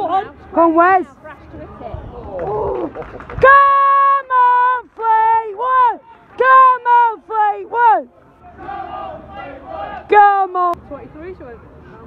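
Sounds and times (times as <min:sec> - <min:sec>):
low crowd murmur: 0:00.0 - 0:12.0.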